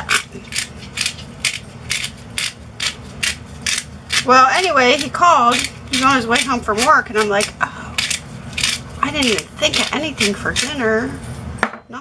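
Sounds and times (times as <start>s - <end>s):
pepper mill grinding: 0.0s - 11.2s.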